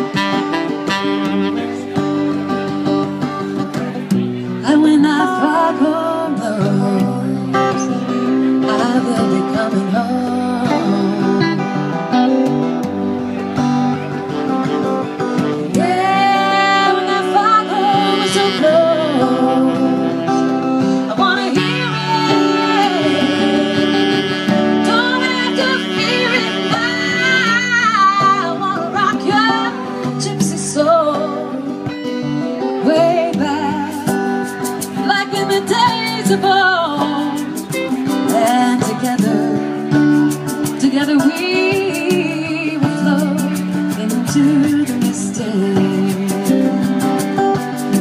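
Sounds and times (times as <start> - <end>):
electric guitar: 0.0 - 48.0
strummed acoustic guitar: 0.0 - 48.0
woman singing: 4.6 - 11.8, 15.7 - 32.0, 32.6 - 48.0.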